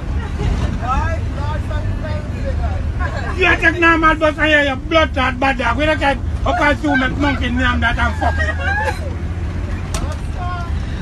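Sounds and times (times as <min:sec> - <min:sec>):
bus engine and road rumble: 0:00.0 - 0:11.0.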